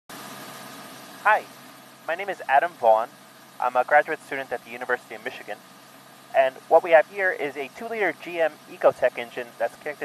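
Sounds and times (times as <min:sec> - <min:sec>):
machinery hum: 0:00.1 - 0:10.0
man saying hi: 0:01.3 - 0:01.5, 0:02.1 - 0:05.6, 0:06.4 - 0:10.0.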